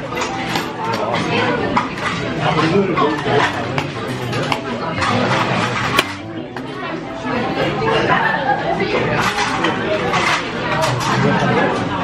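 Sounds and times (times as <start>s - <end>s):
diners chattering: 0.0s - 12.0s.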